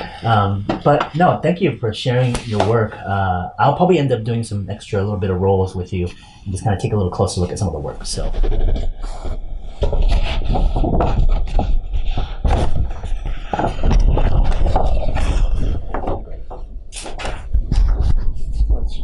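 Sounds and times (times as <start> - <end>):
drawing paper rustling: 7.6 - 19.0.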